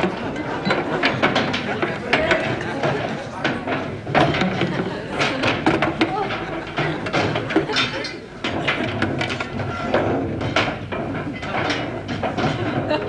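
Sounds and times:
metal parts clanking and knocking: 0.0s - 13.0s.

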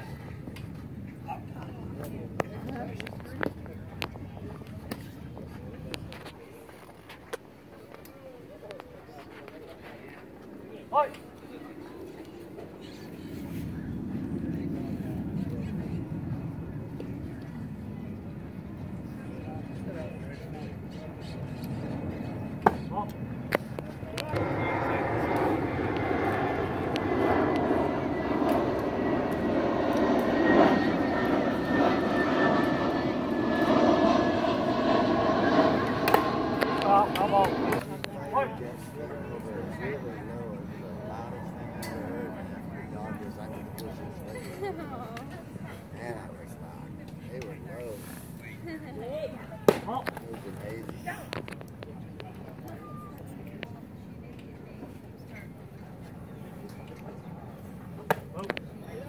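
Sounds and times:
spectators talking: 0.0s - 59.0s
aircraft engine drone: 10.2s - 48.6s.

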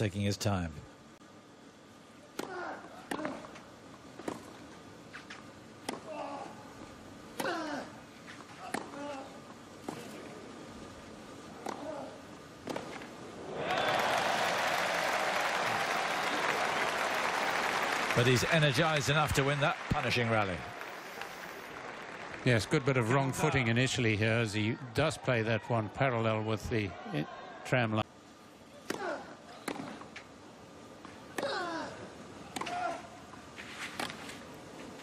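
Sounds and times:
rackets striking tennis ball: 12.6s - 13.1s, 28.8s - 30.2s, 32.5s - 33.0s
crowd applause: 13.4s - 23.8s.

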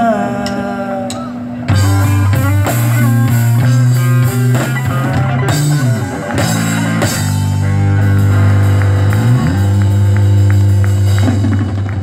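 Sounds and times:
distorted rock guitar chord: 1.7s - 12.0s.

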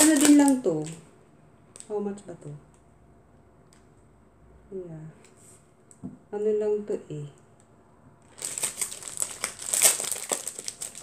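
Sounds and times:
packaging crinkling and rustling: 0.0s - 1.0s, 8.3s - 11.0s.

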